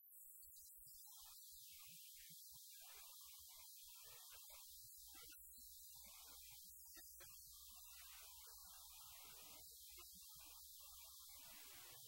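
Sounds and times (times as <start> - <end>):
faint hiss: 1.0 - 12.0.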